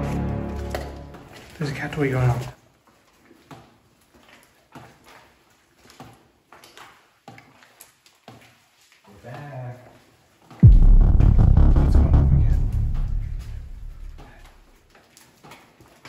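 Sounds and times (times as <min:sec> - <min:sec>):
loud music: 0:00.0 - 0:01.3, 0:10.6 - 0:14.3.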